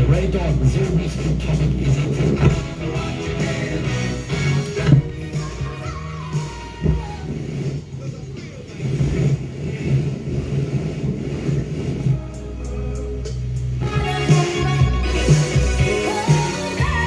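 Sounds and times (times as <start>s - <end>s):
radio tuning noise and crackle: 0.0s - 3.0s, 7.1s - 13.3s
radio music: 0.0s - 17.0s.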